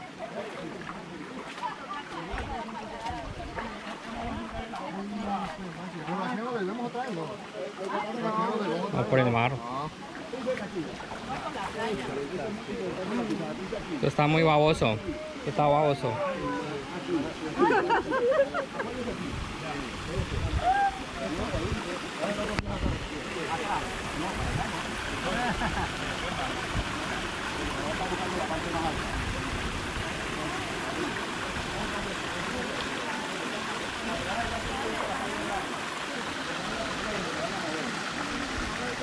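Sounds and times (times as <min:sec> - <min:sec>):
people talking indistinctly: 0:00.0 - 0:39.0
water rushing among rocks: 0:00.0 - 0:39.0.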